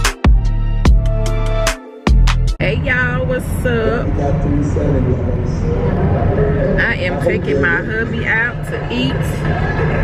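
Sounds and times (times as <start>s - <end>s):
car road and engine rumble: 2.6s - 10.0s.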